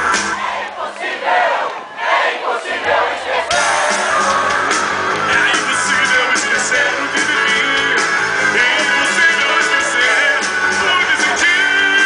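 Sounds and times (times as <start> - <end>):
band playing: 0.0 - 0.6, 2.4 - 12.0
concert crowd cheering: 0.0 - 12.0.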